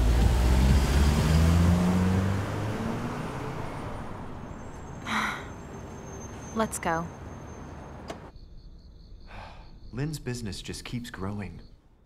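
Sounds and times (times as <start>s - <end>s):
car pulling away: 0.0s - 6.6s.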